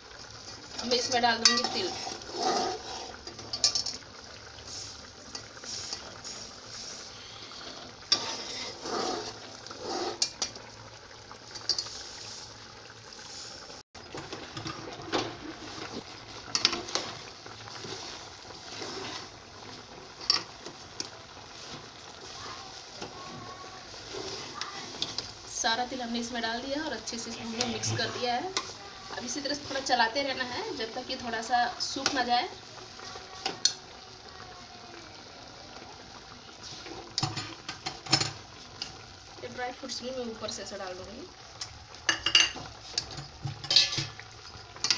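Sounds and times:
steel spoon scraping steel pot: 0:01.4 - 0:03.9, 0:08.1 - 0:10.4, 0:42.2 - 0:44.1.

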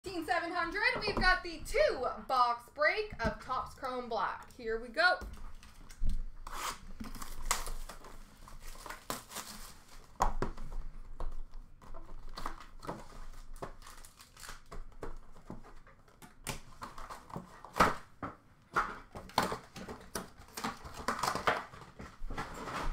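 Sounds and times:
plastic wrap crinkling: 0:05.4 - 0:15.8.

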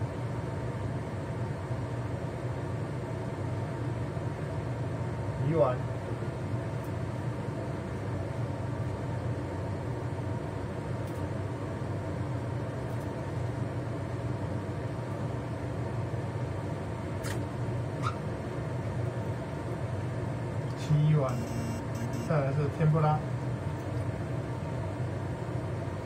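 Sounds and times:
fan humming: 0:00.0 - 0:26.0.

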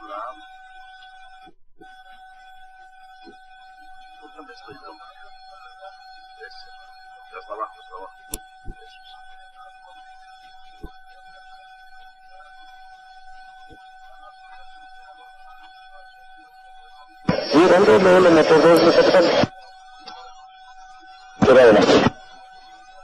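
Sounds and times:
muffled voices: 0:00.0 - 0:00.5, 0:04.2 - 0:11.4, 0:17.2 - 0:22.4
steady electrical tone: 0:00.0 - 0:23.0.

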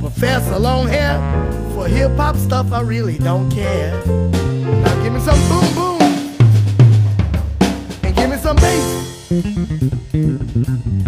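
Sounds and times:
drum kit break: 0:00.0 - 0:11.0
low held bass notes: 0:00.0 - 0:11.0.

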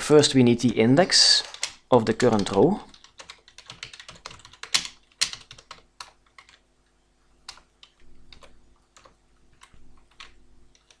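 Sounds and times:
computer keyboard typing: 0:01.4 - 0:06.6, 0:07.4 - 0:11.0.

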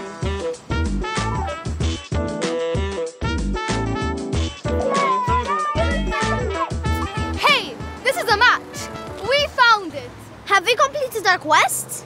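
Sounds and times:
upbeat swing music: 0:00.0 - 0:09.4.

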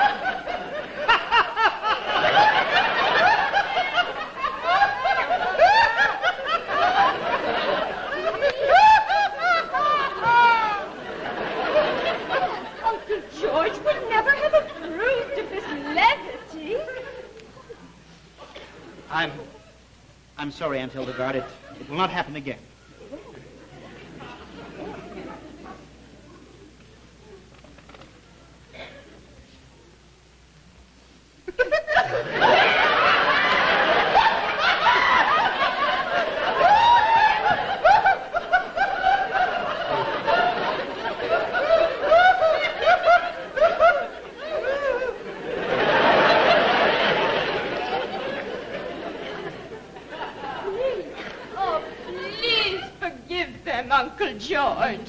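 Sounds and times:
overlapping voices: 0:00.0 - 0:16.0
laughter: 0:00.0 - 0:18.0, 0:21.0 - 0:21.9, 0:23.3 - 0:25.9, 0:31.4 - 0:53.0.

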